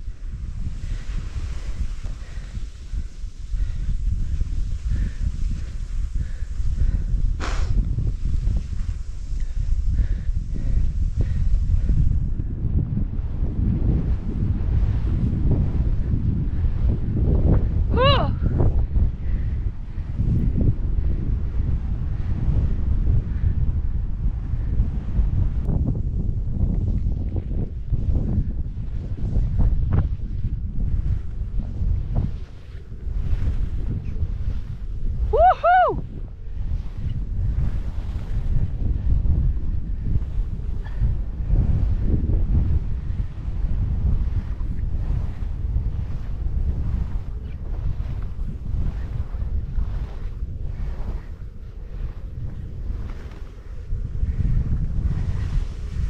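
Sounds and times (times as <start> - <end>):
skis rushing through powder snow: 0.0 - 12.2, 44.3 - 56.0
wind buffeting microphone: 0.0 - 56.0
high-pitched vocal whoop: 35.3 - 36.1.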